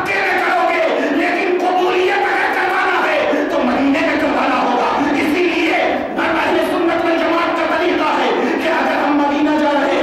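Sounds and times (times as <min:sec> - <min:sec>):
man preaching loudly: 0:00.0 - 0:10.0.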